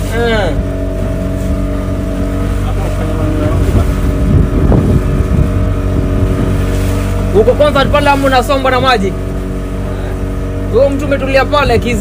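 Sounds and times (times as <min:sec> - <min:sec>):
motorboat engine droning: 0:00.0 - 0:12.0.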